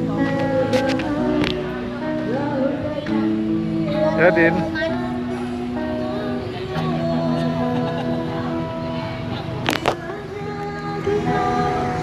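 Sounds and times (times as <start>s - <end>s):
acoustic guitar: 0.0s - 12.0s
crowd chatter: 0.0s - 12.0s
woman singing: 0.0s - 12.0s.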